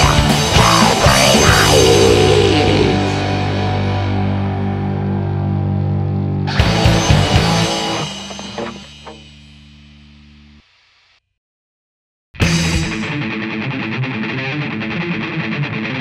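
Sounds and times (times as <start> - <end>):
distorted electric guitar chord: 0.0 - 10.6
band striking closing hits: 7.2 - 9.8.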